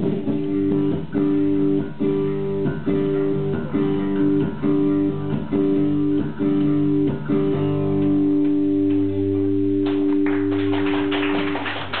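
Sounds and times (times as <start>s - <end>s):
bass and acoustic guitar chord: 0.0s - 10.8s
audience clapping: 8.0s - 12.0s.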